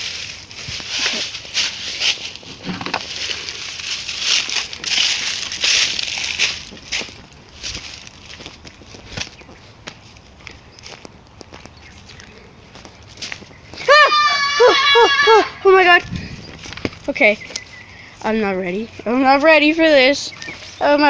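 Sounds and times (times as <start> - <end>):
footsteps crunching dry leaves: 0.0 - 21.0.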